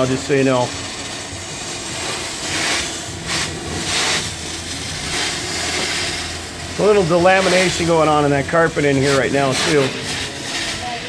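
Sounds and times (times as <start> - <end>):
carpet cleaning wand hissing: 0.0 - 11.0.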